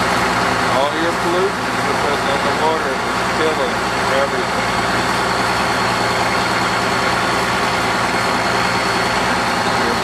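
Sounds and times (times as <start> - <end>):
boat engine running: 0.0 - 10.0.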